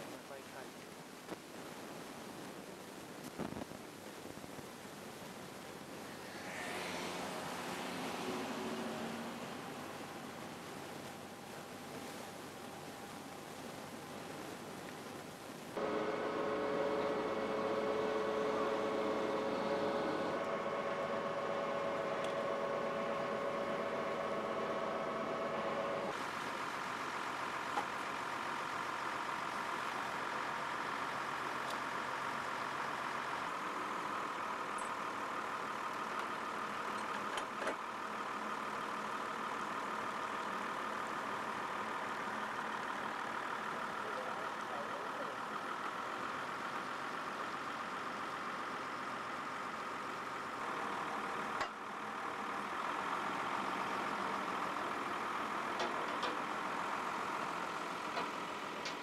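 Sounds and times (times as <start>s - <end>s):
truck engine running: 15.8s - 59.0s.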